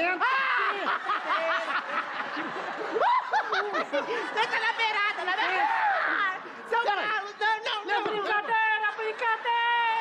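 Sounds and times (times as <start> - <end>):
men laughing and yelping: 0.0 - 10.0.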